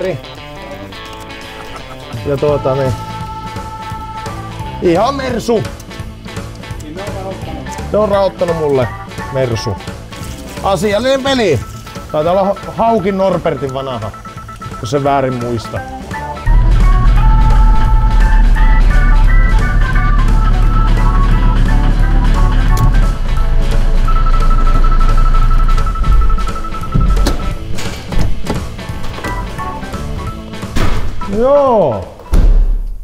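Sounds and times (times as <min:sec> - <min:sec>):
blues music with bass and drums: 0:00.0 - 0:32.9.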